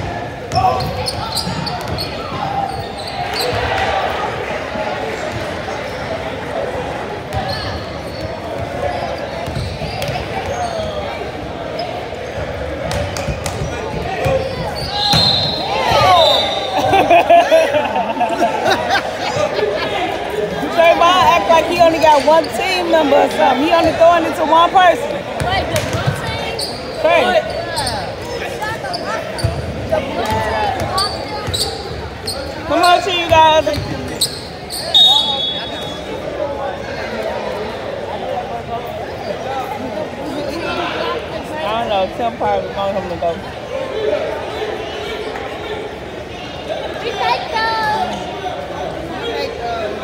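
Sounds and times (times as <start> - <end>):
people talking: 0.0 - 50.0
spectators chattering: 0.0 - 50.0
sneaker squeaks: 0.3 - 3.9, 5.3 - 6.3, 7.3 - 17.0, 25.4 - 36.3.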